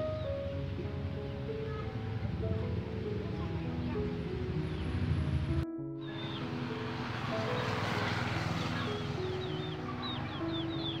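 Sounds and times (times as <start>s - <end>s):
background music held notes: 0.0s - 11.0s
birds chirping: 3.3s - 5.4s, 6.0s - 11.0s.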